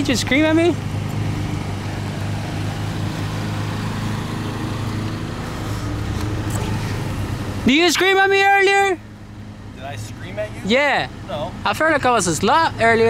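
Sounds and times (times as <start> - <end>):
outdoor street noise: 0.0 - 13.0
vehicle engine idling: 0.0 - 13.0.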